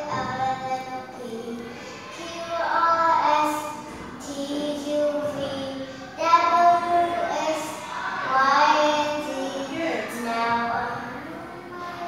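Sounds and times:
young child singing: 0.0 - 12.0.

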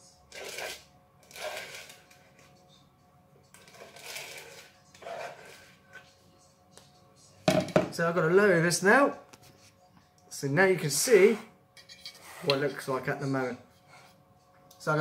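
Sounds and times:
knife scraping mixing bowl: 0.3 - 2.4, 3.6 - 6.1, 11.0 - 13.0.

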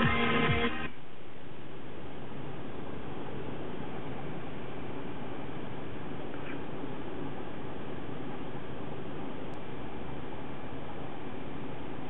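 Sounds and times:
electronic dance music: 0.0 - 0.9.

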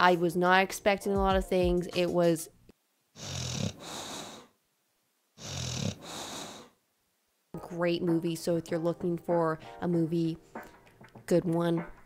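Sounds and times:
small dog snoring: 3.2 - 4.5, 5.4 - 6.8.

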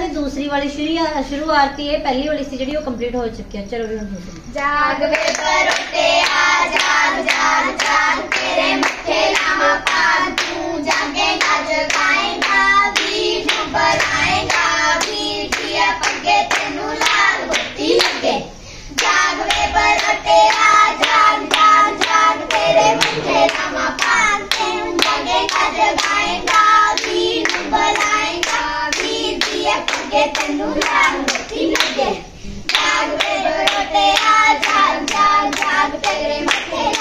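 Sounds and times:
women and girls singing together: 4.6 - 37.0
rhythmic hand clapping: 5.1 - 37.0.

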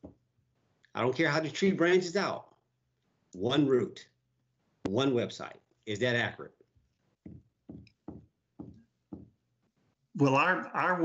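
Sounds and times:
faint knocks on hard surface: 7.2 - 9.4.

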